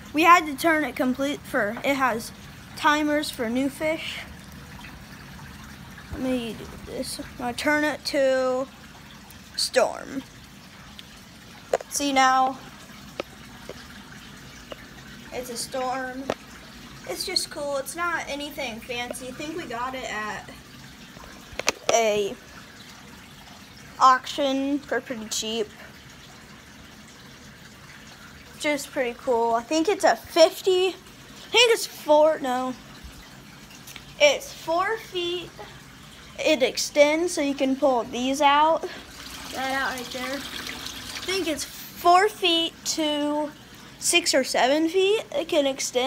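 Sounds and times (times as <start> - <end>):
water trickling from filter: 0.0 - 46.0.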